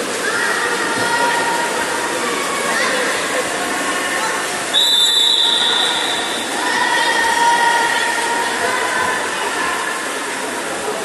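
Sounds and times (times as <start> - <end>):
swimmers splashing: 0.0 - 11.0
shrill whistle-like tone: 4.7 - 6.4.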